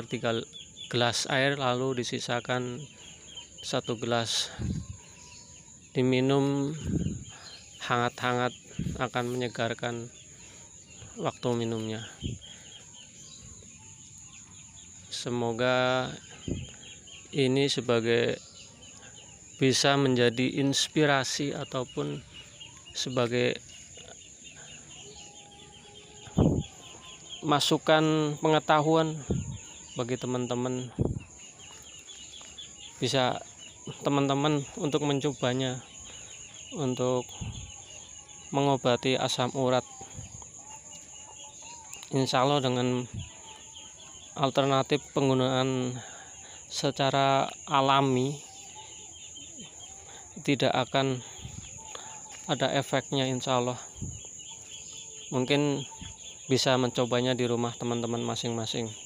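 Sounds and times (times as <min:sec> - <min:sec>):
faint bird chirps: 0:00.0 - 0:59.0.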